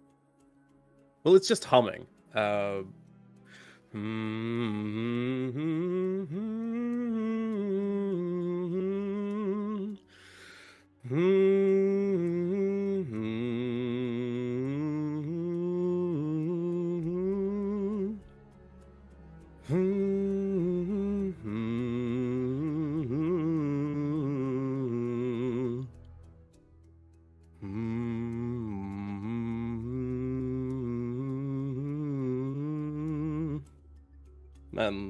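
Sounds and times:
person humming a hymn: 3.9 - 10.0, 11.0 - 18.2, 19.6 - 25.9, 27.6 - 33.7.

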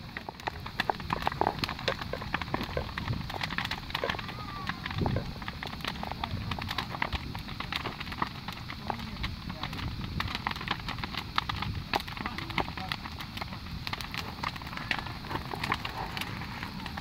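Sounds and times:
bonfire crackling and popping: 0.0 - 17.0.

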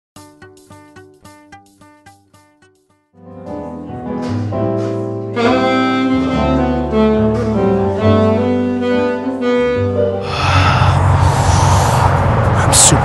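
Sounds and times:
electronic keyboard bass notes: 0.2 - 13.0
alto saxophone melody: 5.2 - 10.5.

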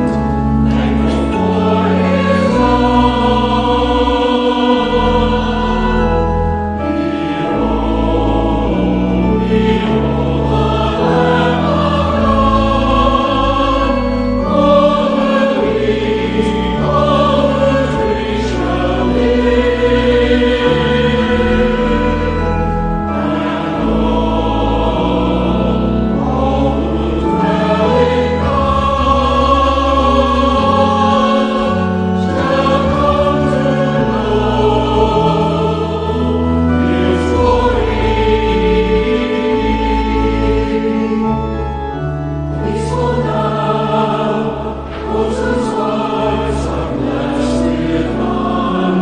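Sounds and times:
choir and congregation singing hymn: 0.0 - 49.0
sustained low chords: 0.0 - 49.0.

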